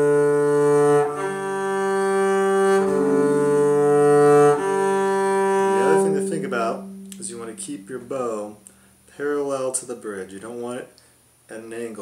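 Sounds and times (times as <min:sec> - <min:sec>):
bowed double bass: 0:00.0 - 0:08.9.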